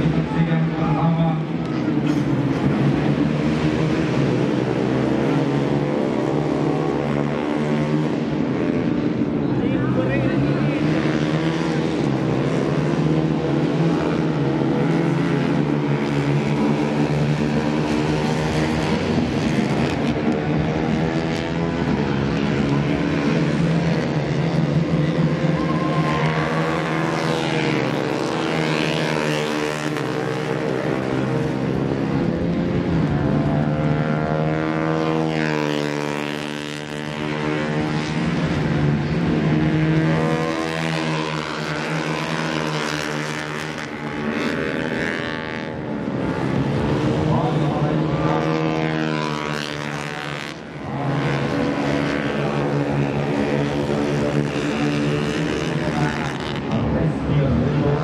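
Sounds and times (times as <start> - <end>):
racing motorcycle engines: 0.0 - 58.0.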